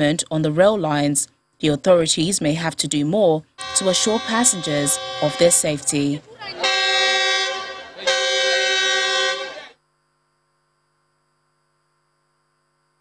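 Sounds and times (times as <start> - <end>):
train horn blasts: 3.6 - 9.8.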